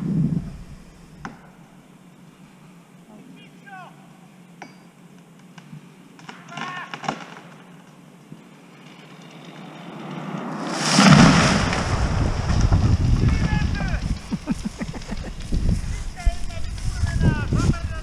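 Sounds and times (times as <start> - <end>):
branches crackling and settling: 0.0 - 18.0
tree crashing to the ground: 8.8 - 18.0
tree crown rushing through air: 9.6 - 18.0.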